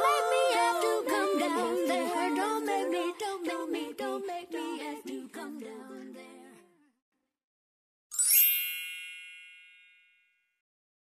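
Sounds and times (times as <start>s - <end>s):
high-pitched chime: 8.1s - 10.5s.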